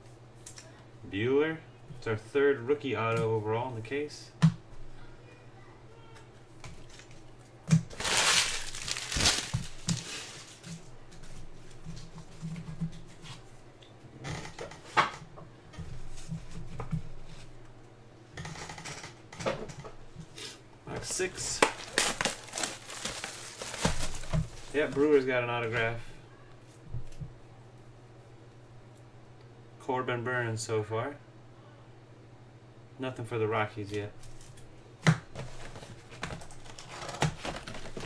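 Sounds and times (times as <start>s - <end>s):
low steady hum: 0.0s - 38.0s
plastic wrapper crinkling: 6.8s - 10.7s, 21.0s - 25.2s, 35.6s - 38.0s
cards being handled: 7.8s - 10.6s, 20.9s - 25.2s.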